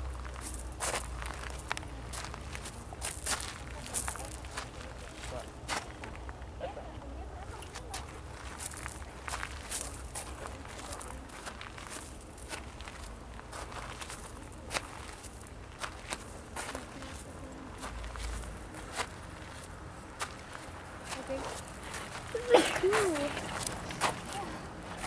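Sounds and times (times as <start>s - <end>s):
steady low rumble: 0.0s - 25.0s.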